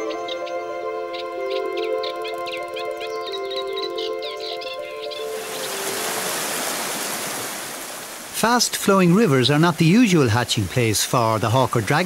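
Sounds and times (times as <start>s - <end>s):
water rushing over waterfall: 5.2s - 12.0s.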